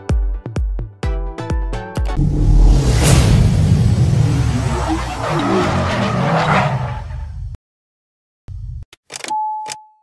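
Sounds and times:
music: 0:00.0 - 0:03.2
tyre-spin whoosh: 0:02.2 - 0:06.0
car engine revving: 0:02.2 - 0:07.3.

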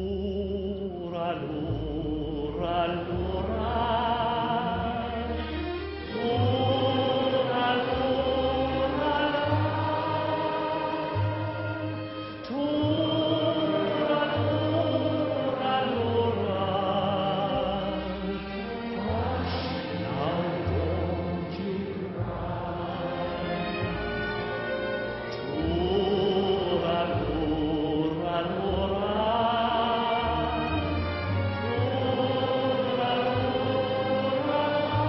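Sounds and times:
tenor voice singing ballad: 0:00.0 - 0:05.5, 0:06.1 - 0:24.6, 0:25.3 - 0:35.0
instrumental accompaniment: 0:00.9 - 0:35.0.

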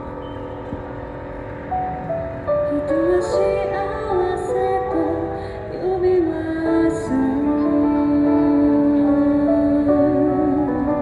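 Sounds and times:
low rumble of road traffic: 0:00.0 - 0:11.0
sustained backing chords: 0:00.0 - 0:11.0
woman singing into microphone: 0:02.7 - 0:11.0.

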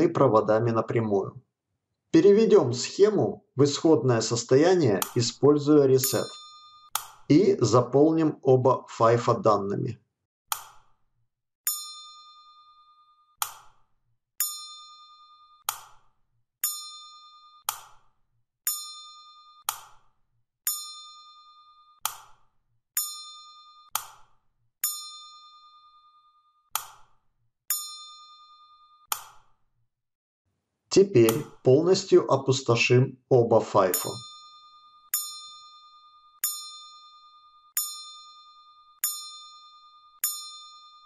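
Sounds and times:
electronic bell-like dings: 0:06.0 - 0:07.0, 0:11.6 - 0:17.7, 0:18.7 - 0:22.1, 0:23.0 - 0:26.7, 0:27.7 - 0:29.1, 0:33.8 - 0:41.0.

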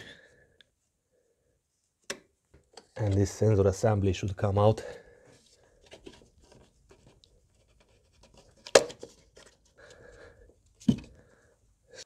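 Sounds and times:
faint scraping and handling noises: 0:02.6 - 0:11.3.

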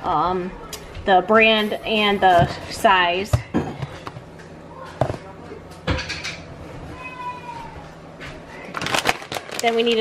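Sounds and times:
object knocking on counter: 0:05.0 - 0:05.2.

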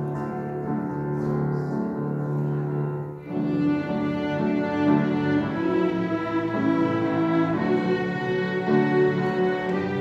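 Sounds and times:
string ensemble bowing chords: 0:00.0 - 0:10.0.

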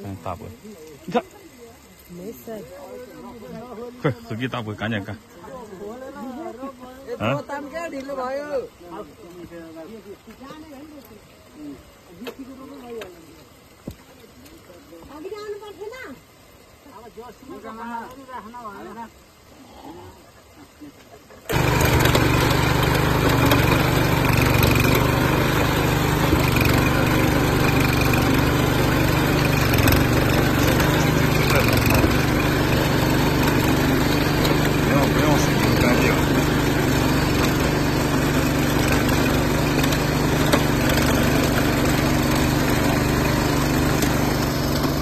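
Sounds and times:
small engine running under load: 0:21.4 - 0:45.0
tines churning mud: 0:21.4 - 0:45.0.

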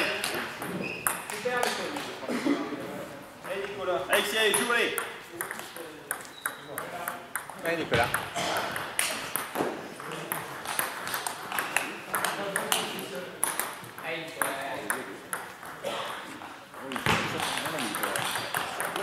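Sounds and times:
table tennis balls knocking: 0:00.0 - 0:02.1, 0:04.4 - 0:19.0.

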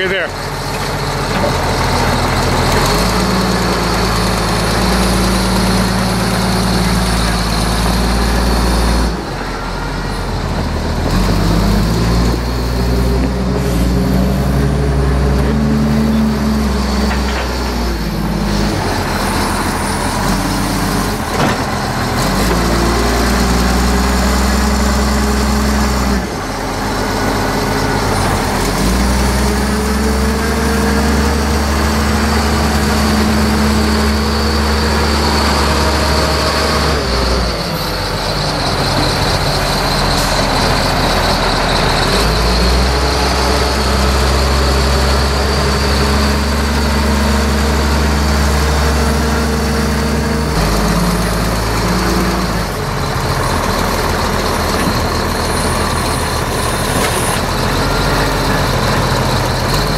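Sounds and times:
diesel engine running under load: 0:00.0 - 0:59.9.

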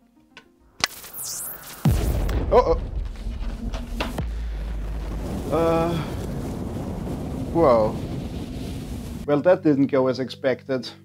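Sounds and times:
electrical hissing with swooping whistle: 0:00.8 - 0:02.3
deep boom: 0:01.6 - 0:09.3.

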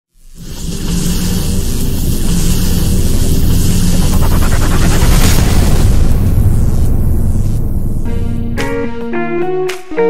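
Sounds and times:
hiss: 0:00.1 - 0:08.4
low droning rumble: 0:00.4 - 0:08.6.

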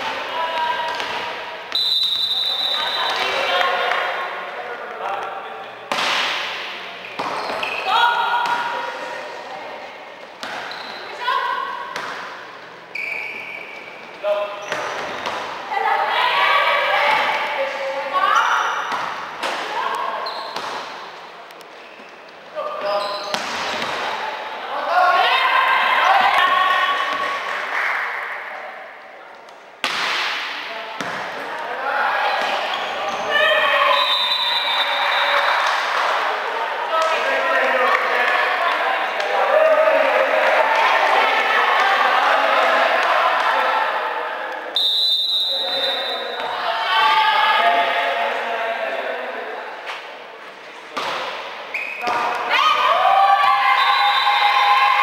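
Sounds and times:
volleyball strikes: 0:05.9 - 0:08.8, 0:10.4 - 0:11.0, 0:11.9 - 0:12.5, 0:23.2 - 0:24.2, 0:29.8 - 0:31.4
shoe squeaks on court: 0:07.0 - 0:07.9, 0:10.6 - 0:11.2, 0:20.2 - 0:20.7, 0:21.8 - 0:23.5.

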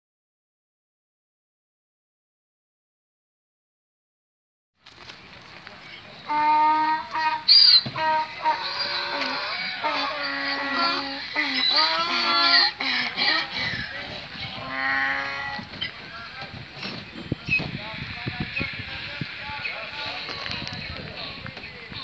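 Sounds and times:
donkeys braying: 0:06.1 - 0:17.0.

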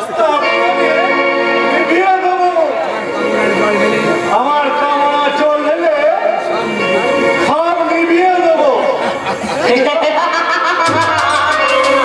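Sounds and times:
stage music accompaniment: 0:00.0 - 0:12.0.

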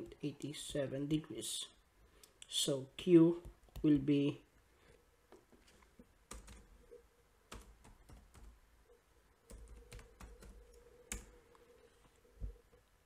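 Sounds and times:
faint keyboard typing: 0:05.3 - 0:08.7, 0:09.4 - 0:13.0.

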